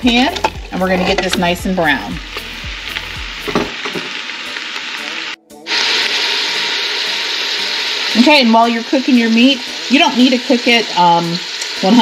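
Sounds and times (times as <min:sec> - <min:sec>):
meat sizzling in butter: 0:00.0 - 0:12.0.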